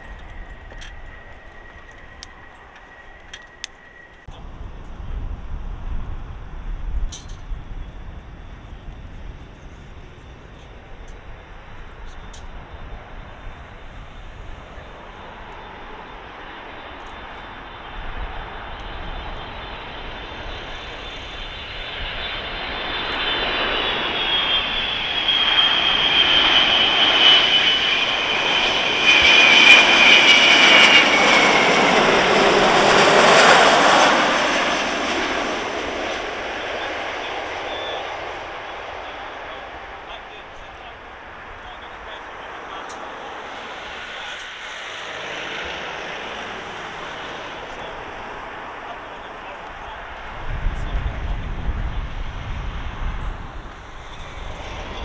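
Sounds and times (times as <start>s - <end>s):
high fan whine: 0.0s - 16.0s
jet engines roaring: 0.0s - 55.0s.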